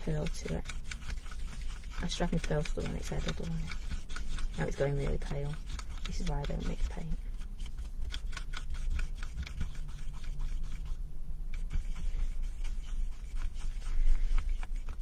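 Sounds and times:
wooden stirrer scraping plastic palette: 0.0s - 15.0s.

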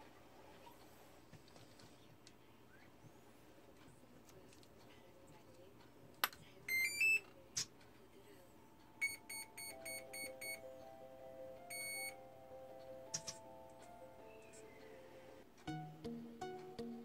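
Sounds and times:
short beeps: 9.0s - 10.6s, 11.7s - 12.2s.

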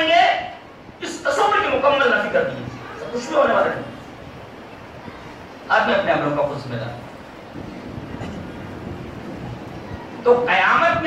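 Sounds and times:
low rumble of crowded hall: 0.0s - 11.0s.

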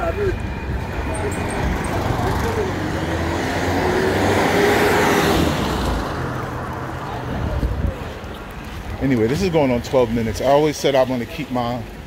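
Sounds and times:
street traffic: 0.0s - 12.0s
vehicle passing close by: 0.4s - 8.1s.

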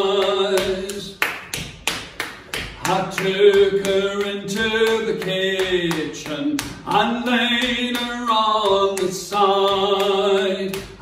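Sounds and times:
man singing unaccompanied: 0.0s - 1.2s, 2.8s - 11.0s
steady sharp taps: 0.1s - 11.0s.

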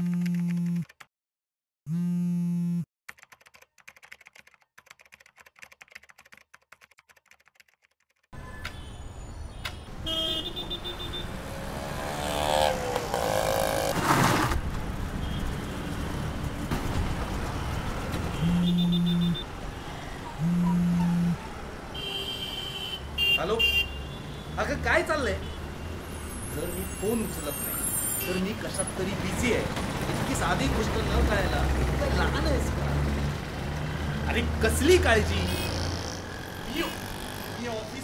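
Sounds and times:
mobile phone buzzing: 0.0s - 0.8s, 1.9s - 2.9s, 18.4s - 19.4s, 20.4s - 21.4s
car horns honking: 8.4s - 11.6s, 18.3s - 19.6s, 20.4s - 24.5s
vehicles passing: 8.4s - 38.0s.

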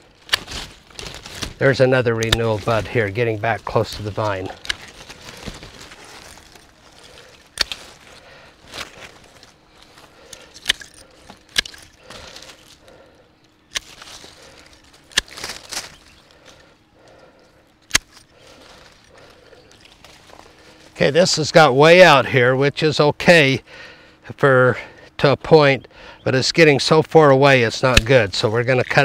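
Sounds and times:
leaves rustling: 0.0s - 17.4s, 18.0s - 21.6s
pruning shears snipping: 0.2s - 13.0s, 13.7s - 17.2s, 17.8s - 20.7s, 27.6s - 29.0s.

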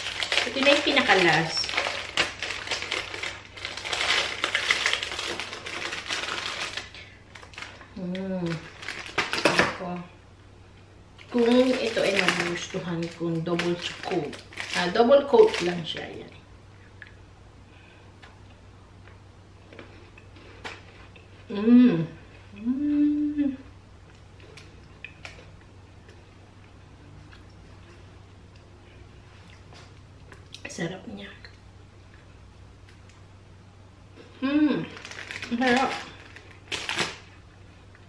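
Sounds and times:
biscuit crunching: 0.0s - 9.7s, 34.2s - 38.0s
plastic packet crinkling: 0.0s - 9.8s, 11.2s - 16.4s, 34.9s - 37.4s
low steady hum: 0.0s - 38.0s.

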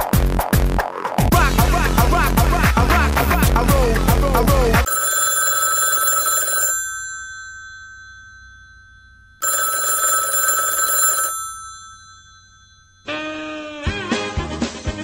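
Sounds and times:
telephone bell ringing: 4.8s - 13.4s
backing music track: 13.1s - 15.0s.

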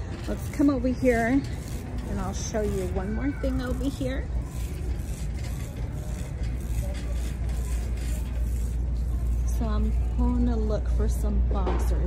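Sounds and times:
shopping cart wheels rumbling: 0.0s - 12.0s.

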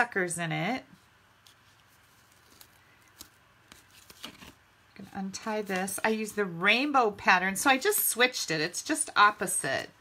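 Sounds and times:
paper cards tapping and rustling: 1.4s - 6.4s.

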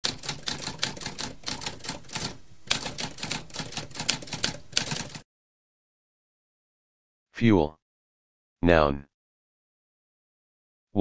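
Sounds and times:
typewriter keystrokes: 0.0s - 5.2s.

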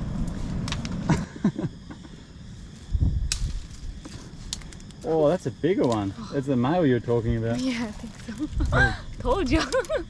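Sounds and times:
twigs cracking and snapping: 0.2s - 1.0s, 2.8s - 5.2s, 5.8s - 6.1s.

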